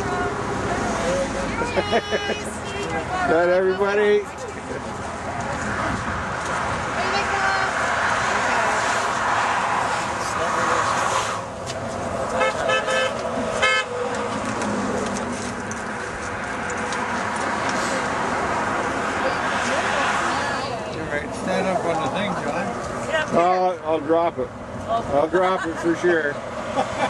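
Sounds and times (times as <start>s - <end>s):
people's voices: 0.0s - 26.4s
road traffic passing: 0.0s - 27.0s
vehicle horns honking: 12.3s - 14.1s.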